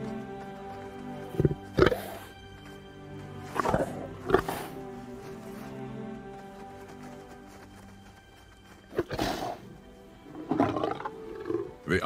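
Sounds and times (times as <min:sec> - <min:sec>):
background music: 0:00.0 - 0:12.0
lions growling: 0:03.5 - 0:04.8, 0:10.3 - 0:11.8.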